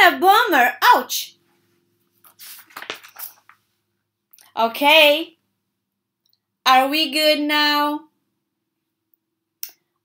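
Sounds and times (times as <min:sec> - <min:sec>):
paper page turning: 0:02.2 - 0:03.6.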